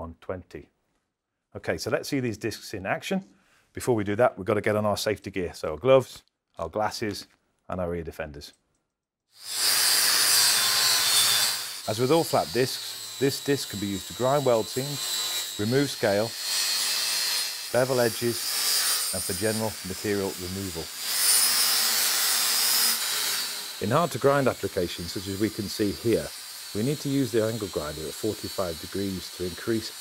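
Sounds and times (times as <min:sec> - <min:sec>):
angle grinder grinding steel: 0:09.4 - 0:30.0.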